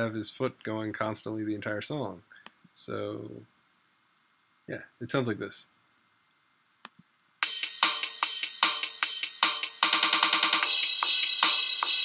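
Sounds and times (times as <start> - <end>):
rock drum beat: 7.4 - 12.0.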